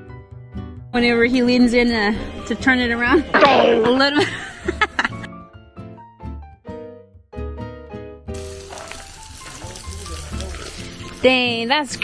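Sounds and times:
meat sizzling: 8.3 - 12.0.

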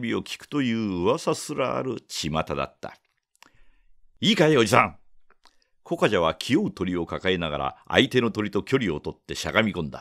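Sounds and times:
man reading aloud: 0.0 - 3.2, 4.2 - 5.2, 5.8 - 10.0.

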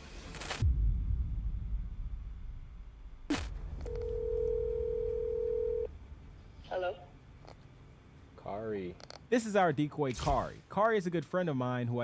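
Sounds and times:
telephone ringback tone: 3.9 - 5.9.

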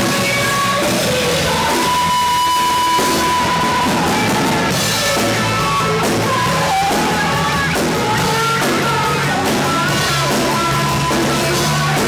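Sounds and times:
electric guitars and bass: 0.0 - 12.0
woman singing: 0.0 - 12.0.

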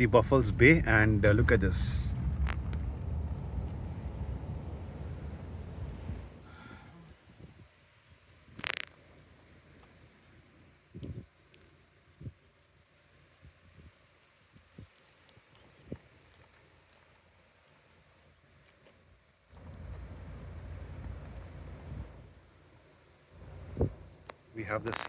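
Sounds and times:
wind buffeting microphone: 0.0 - 6.4, 10.9 - 11.3, 23.6 - 24.0.

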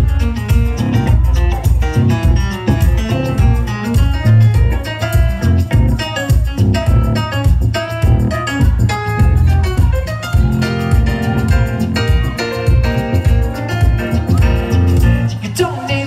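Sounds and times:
live rock band playing: 0.0 - 15.5.

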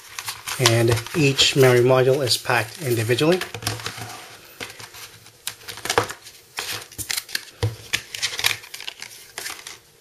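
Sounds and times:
rustling handling noise: 0.0 - 9.9.

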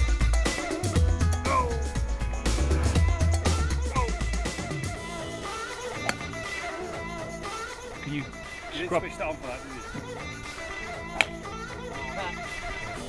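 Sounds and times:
music with guitar and drums: 0.0 - 13.0.

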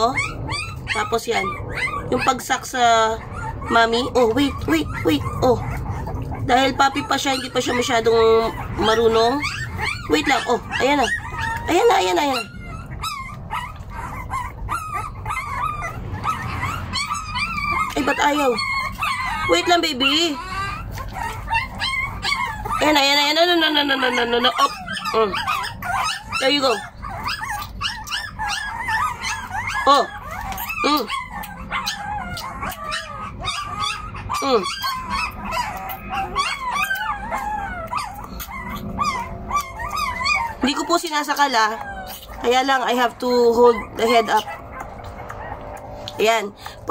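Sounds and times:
puppies whining and yelping: 0.0 - 46.9.

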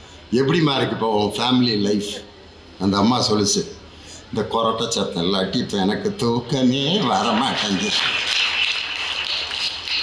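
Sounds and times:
audience applause: 7.1 - 10.0.

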